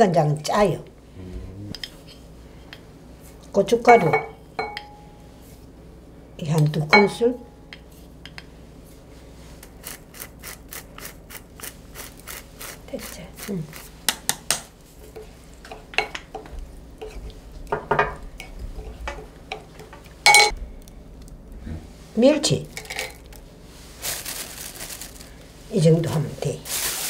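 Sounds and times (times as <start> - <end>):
spoon stirring and tapping in bowl: 3.9 - 5.0, 14.1 - 20.6
ringing glass clink: 4.0 - 5.1, 20.3 - 20.5.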